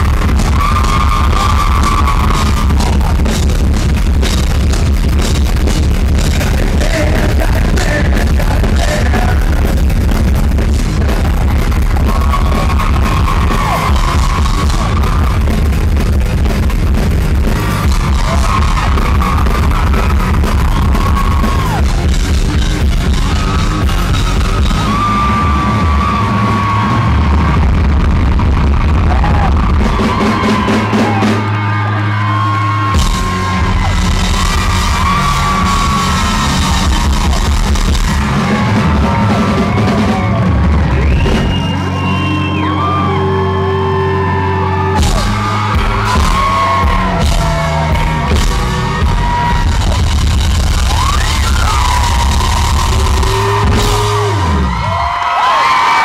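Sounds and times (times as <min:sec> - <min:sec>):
bass guitar: 0:00.0 - 0:56.0
distorted electric guitars: 0:00.0 - 0:56.0
drums: 0:00.0 - 0:56.0.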